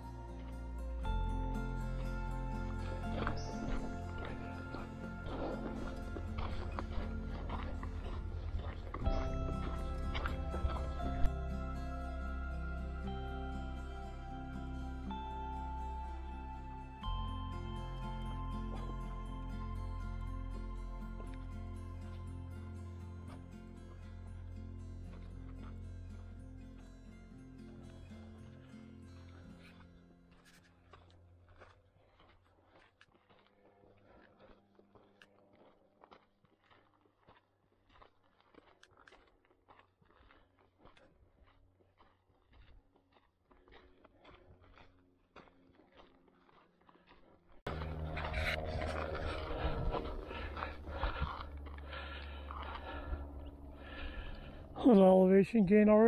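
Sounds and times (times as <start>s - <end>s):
music: 0.0s - 31.7s, 47.7s - 55.0s
footsteps crunching on rocky trail: 0.3s - 12.4s, 16.1s - 27.0s, 27.7s - 54.8s.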